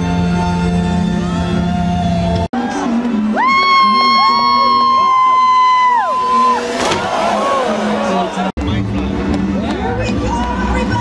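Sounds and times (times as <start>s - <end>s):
music: 0.0s - 7.2s, 8.0s - 11.0s
crowd cheering and whooping: 2.6s - 8.5s.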